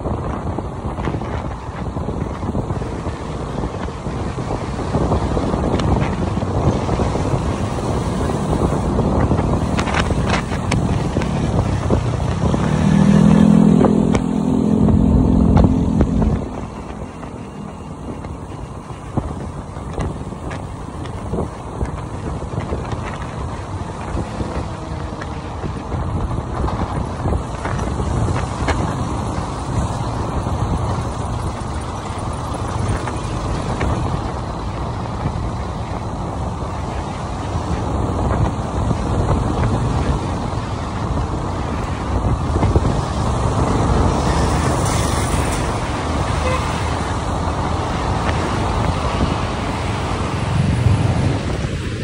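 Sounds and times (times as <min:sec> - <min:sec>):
wind rumble on microphone: 0:00.0 - 0:52.0.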